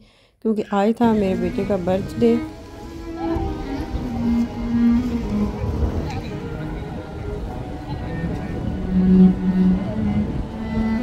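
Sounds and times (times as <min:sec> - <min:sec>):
cello bowed in held notes: 0:01.0 - 0:11.0
low rumble: 0:01.0 - 0:11.0.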